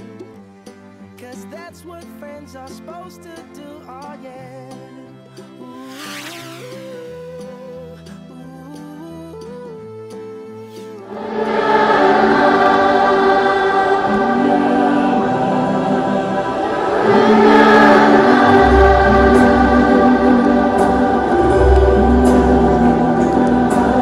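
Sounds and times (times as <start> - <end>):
instrumental backing: 0.0 - 24.0
children's choir singing: 11.0 - 24.0.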